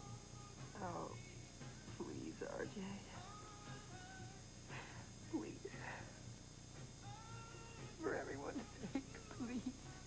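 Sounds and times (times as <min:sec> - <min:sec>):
woman crying and wailing: 0:08.6 - 0:09.8.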